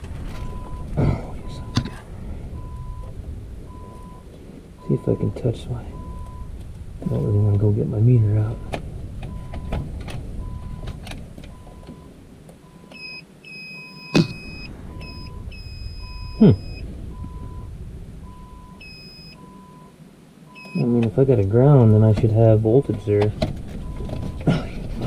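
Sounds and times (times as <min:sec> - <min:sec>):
rustling of wires: 0:00.0 - 0:13.2, 0:20.8 - 0:25.0
warning beeper short beeps: 0:04.8 - 0:07.5, 0:12.7 - 0:17.7, 0:18.3 - 0:19.9, 0:20.5 - 0:21.0
higher beep: 0:06.0 - 0:07.3, 0:12.7 - 0:19.9, 0:20.5 - 0:21.0.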